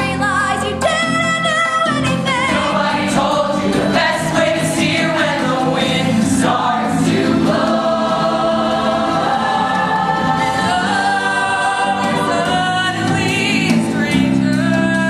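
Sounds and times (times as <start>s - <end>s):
choir singing in harmony: 2.4s - 14.6s.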